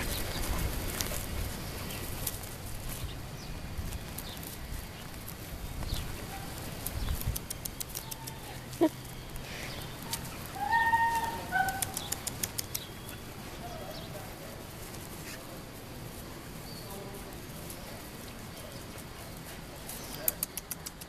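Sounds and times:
footsteps on dry grass: 0.0 - 20.1
animal whining calls: 7.9 - 12.6
sharp click: 11.7 - 12.9.

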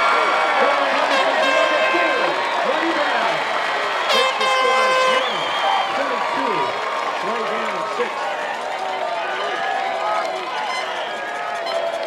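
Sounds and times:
crowd shouting and talking: 0.0 - 12.0.

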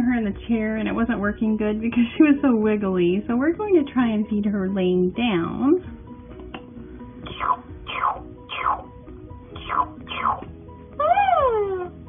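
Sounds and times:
toy doll electronic chirps: 7.2 - 8.9, 9.6 - 10.5.

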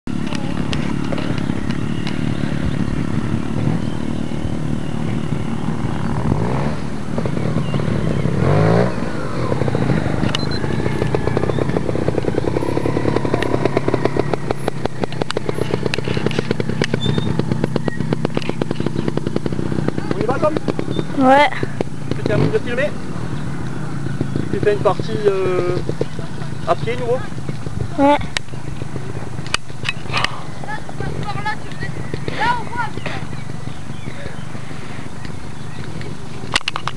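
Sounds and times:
motorcycle engine running: 0.0 - 36.9.

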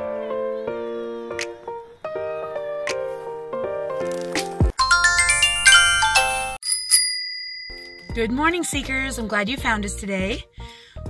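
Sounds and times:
chiming bell-like intro music: 4.8 - 8.2
high ding ringing: 4.8 - 8.2.

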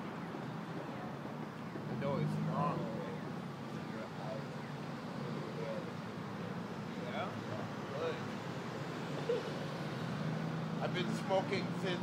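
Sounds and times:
city traffic rumble: 0.0 - 12.0
voices: 0.6 - 10.1, 10.7 - 12.0.

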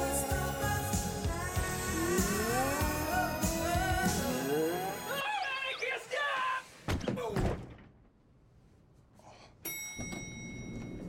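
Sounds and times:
man yelling: 5.2 - 6.7
high bell-like ring: 9.6 - 11.0.

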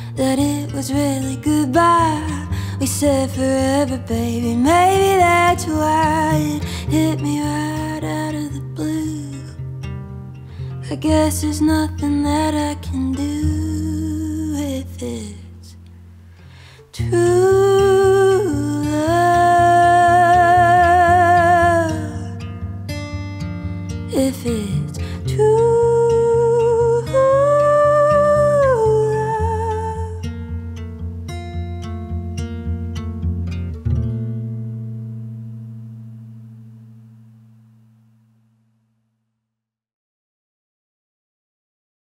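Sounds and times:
acoustic guitar: 0.0 - 39.0.

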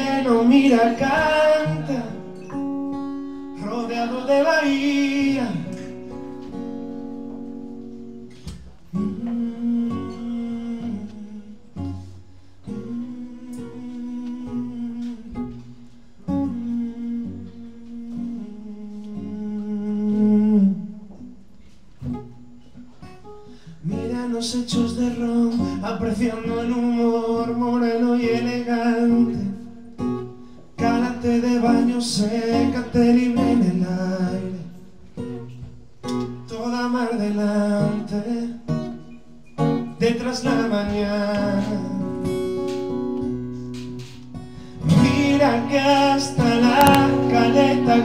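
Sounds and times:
acoustic guitar played softly: 0.0 - 48.0.

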